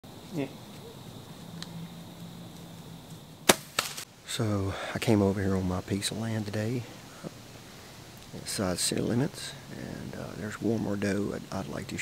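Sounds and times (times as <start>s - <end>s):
bow shot crack: 3.4s - 4.1s.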